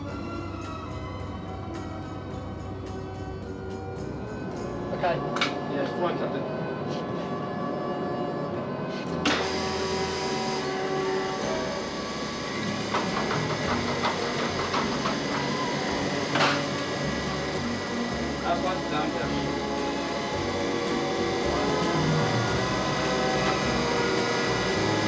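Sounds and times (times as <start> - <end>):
film soundtrack music: 0.0 - 25.0
muffled speech: 4.9 - 7.3, 18.4 - 19.5
steady low hum: 8.3 - 25.0
film projector running: 9.2 - 25.0.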